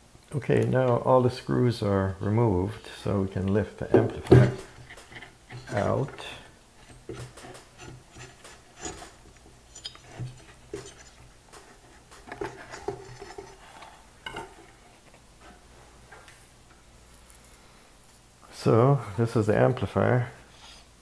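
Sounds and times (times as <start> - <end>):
metal plate knocks and scrapes: 3.9 - 5.9.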